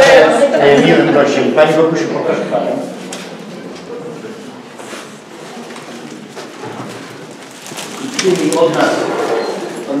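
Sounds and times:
audience murmuring and rustling: 0.0s - 10.0s.

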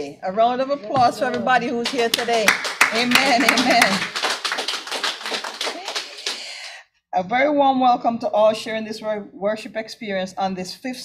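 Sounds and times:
voices: 0.0s - 4.2s
congregation applauding: 1.7s - 6.7s.

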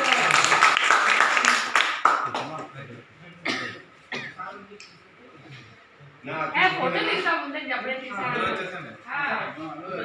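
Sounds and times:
person coughing: 3.4s - 4.4s.

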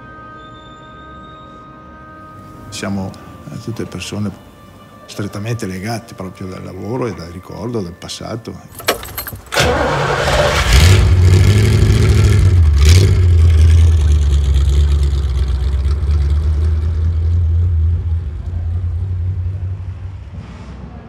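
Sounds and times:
vehicle engine rumbling: 8.8s - 21.0s.

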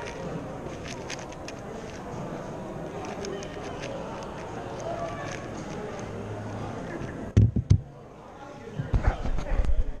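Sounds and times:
phone handling knocks and bumps: 7.4s - 7.9s.

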